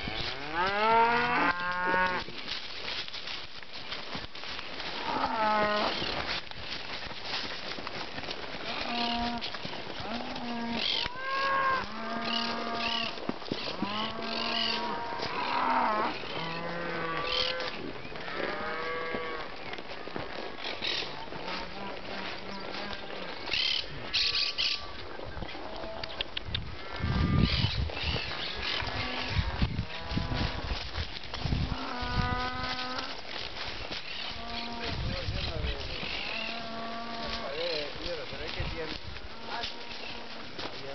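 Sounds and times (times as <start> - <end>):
cattle mooing: 0.0 - 2.2, 5.0 - 6.0, 8.6 - 19.5, 34.3 - 35.0, 36.1 - 37.9.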